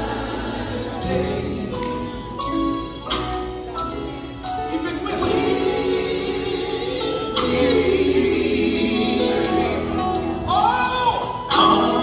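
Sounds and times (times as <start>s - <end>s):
band playing: 0.0s - 12.0s
voices singing gospel: 0.0s - 12.0s.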